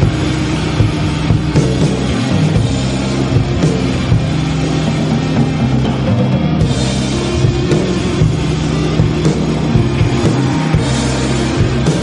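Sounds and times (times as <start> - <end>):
background music: 0.0 - 12.0
car engine running steadily: 0.0 - 12.0.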